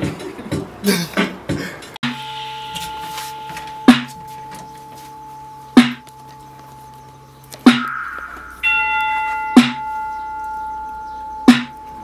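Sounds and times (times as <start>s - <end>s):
held bell-like chime note: 2.1s - 7.0s, 7.7s - 12.0s
hard snare drum hits: 7.7s - 8.0s, 9.6s - 9.8s.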